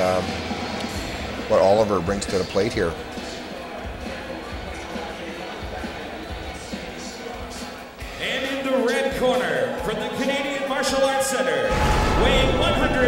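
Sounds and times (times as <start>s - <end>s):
background music: 0.0s - 13.0s
hall noise: 11.6s - 13.0s
low thumps: 11.7s - 13.0s.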